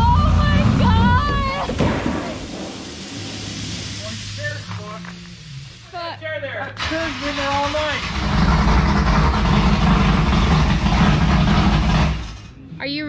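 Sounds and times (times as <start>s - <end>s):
engine running at high revs: 0.0s - 1.7s, 7.8s - 12.5s.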